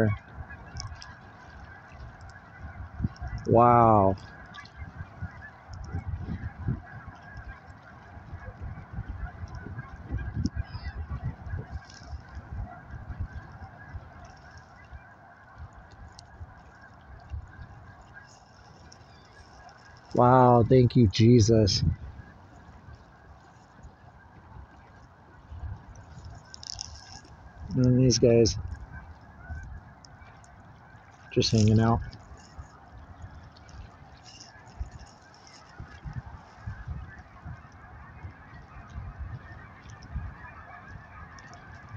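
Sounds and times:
geese honking: 0:00.0 - 0:41.9.

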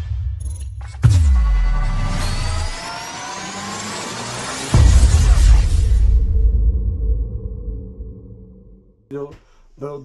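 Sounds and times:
rising electronic tones: 0:01.2 - 0:06.0
loud bass-heavy hit: 0:04.8 - 0:08.7.

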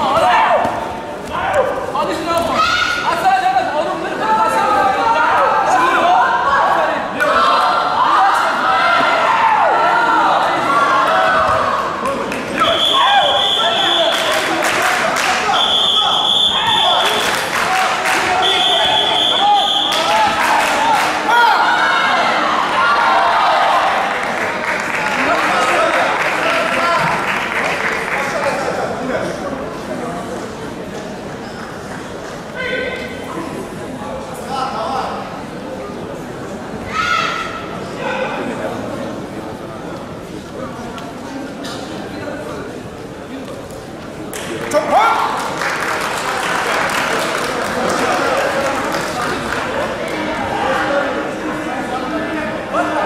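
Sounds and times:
steady background noise: 0:00.0 - 0:53.0.

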